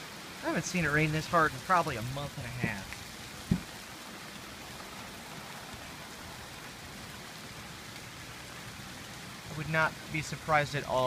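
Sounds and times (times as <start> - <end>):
heavy rain falling: 0.0 - 11.0.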